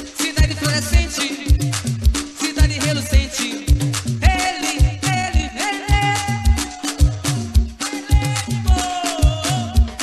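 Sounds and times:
live rock-reggae band: 0.0 - 10.0.

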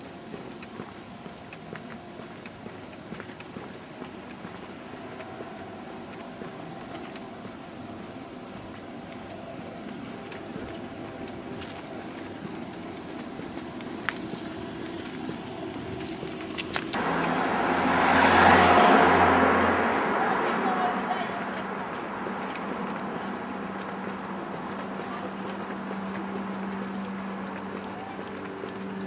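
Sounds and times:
city street traffic hum: 0.0 - 29.0
vehicle passing close by: 14.6 - 29.0.

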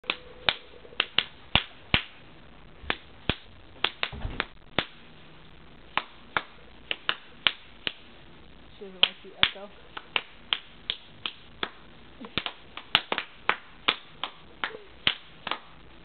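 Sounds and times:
sharp hand claps with echo: 0.0 - 2.2, 2.9 - 5.0, 5.9 - 8.0, 9.0 - 15.8.

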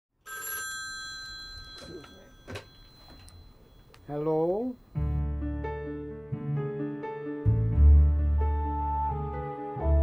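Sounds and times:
telephone bell ringing: 0.2 - 4.3.

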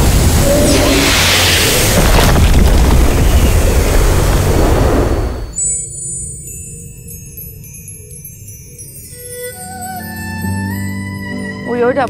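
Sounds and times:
deep booms: 0.0 - 5.6
rushing whoosh: 0.0 - 5.6.

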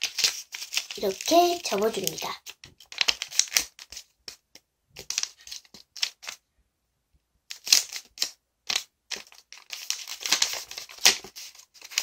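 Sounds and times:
paper crinkling and rustling: 0.0 - 6.4, 7.5 - 12.0.

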